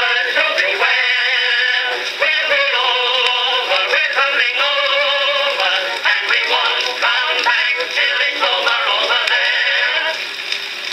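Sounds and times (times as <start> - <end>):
phonograph surface hiss: 0.0 - 10.9.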